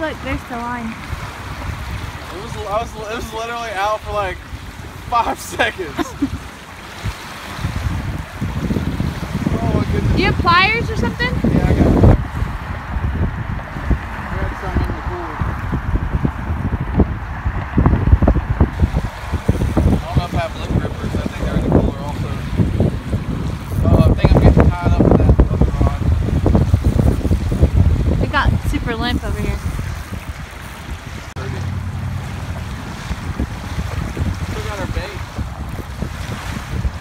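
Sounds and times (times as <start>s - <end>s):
small waves lapping shoreline: 0.0s - 16.5s, 18.7s - 37.0s
wind buffeting microphone: 0.0s - 37.0s.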